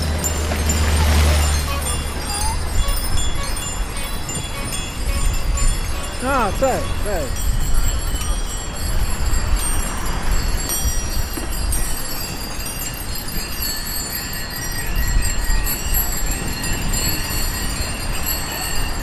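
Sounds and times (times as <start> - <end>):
bicycle tyres rumbling on wet road: 0.0 - 6.2, 7.4 - 19.0
wind: 0.0 - 19.0.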